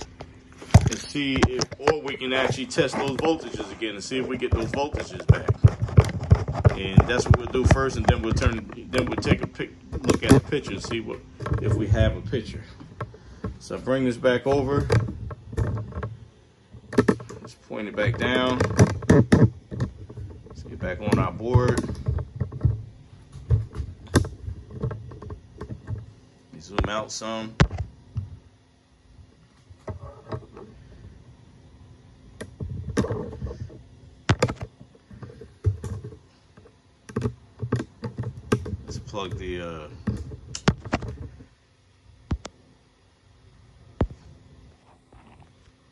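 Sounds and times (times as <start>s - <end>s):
handling noise on metal chassis: 0.0s - 13.0s.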